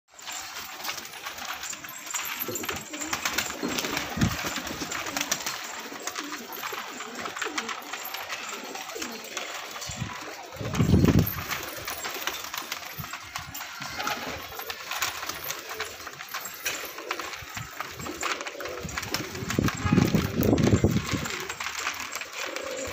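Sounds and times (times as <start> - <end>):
beaks pecking grain: 0.1 - 22.9
pigeons cooing: 0.2 - 22.9.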